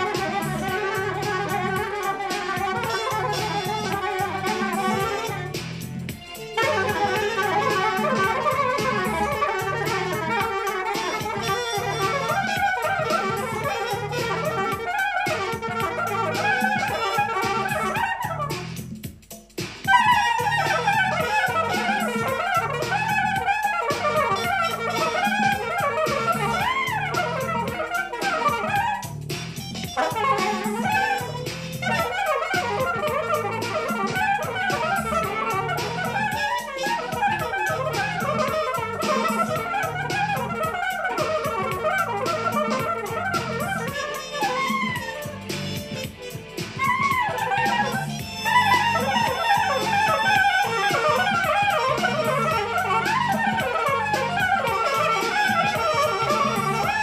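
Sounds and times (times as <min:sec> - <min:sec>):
soprano saxophone solo: 0:00.0 - 0:19.0, 0:19.9 - 0:57.0
backing track with beat and bass: 0:00.0 - 0:57.0.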